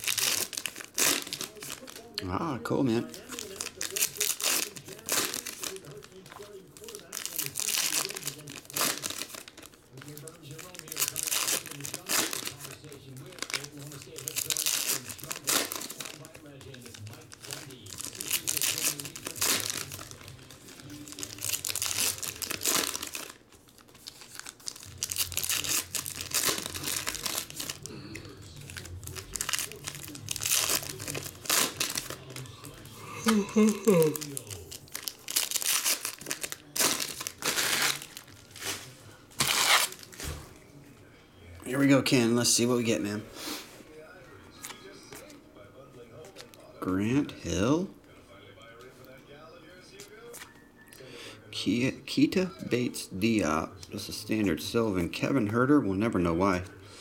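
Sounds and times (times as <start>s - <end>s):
foil wrappers crinkling and tearing: 0.0s - 40.6s.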